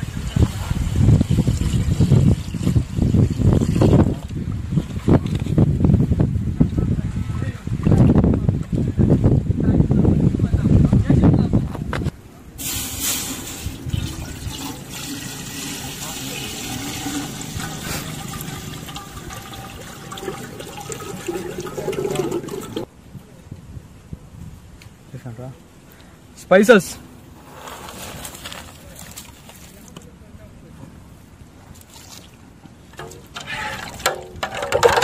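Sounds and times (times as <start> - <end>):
wind buffeting microphone: 0.0 - 24.8
water pouring into a metal pot: 12.6 - 22.9
water splashing: 12.6 - 22.9.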